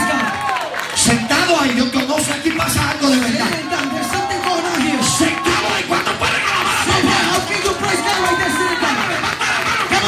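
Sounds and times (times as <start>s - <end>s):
church band with keyboard and drums: 1.0s - 10.0s.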